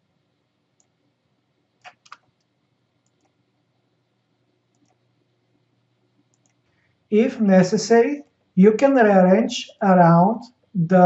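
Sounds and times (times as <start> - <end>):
computer mouse clicks: 0.8 - 1.0, 1.8 - 3.4, 4.7 - 5.0, 6.3 - 6.7.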